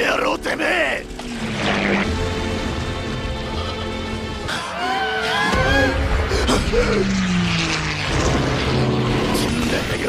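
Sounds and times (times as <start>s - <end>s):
propeller plane engine: 0.0s - 10.0s.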